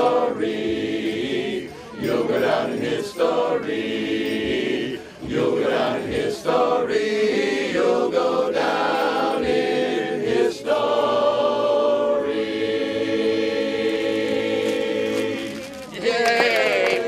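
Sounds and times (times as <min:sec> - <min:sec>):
men singing a cappella in harmony: 0:00.0 - 0:15.8.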